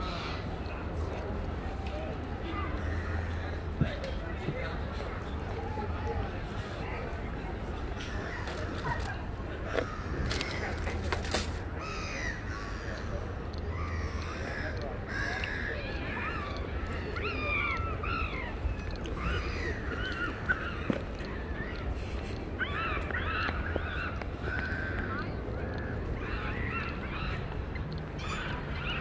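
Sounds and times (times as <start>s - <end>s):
steady low background hum: 0.0s - 29.0s
birds calling: 7.8s - 29.0s.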